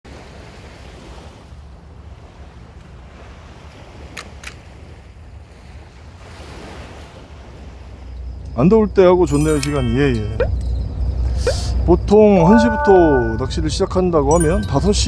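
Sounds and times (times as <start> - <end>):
ocean waves washing onto beach: 0.1 - 8.8.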